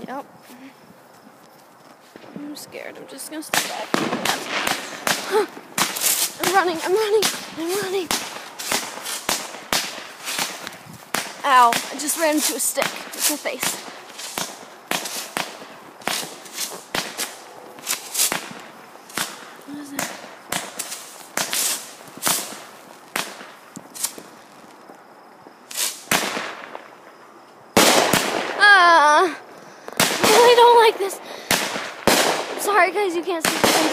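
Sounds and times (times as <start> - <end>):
fireworks bangs and crackles: 2.1 - 33.9.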